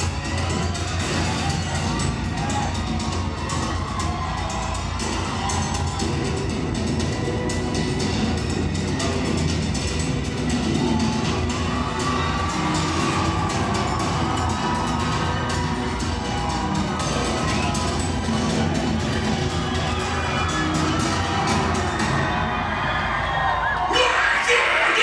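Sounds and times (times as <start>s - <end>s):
crowd cheering and shouting: 0.0s - 25.0s.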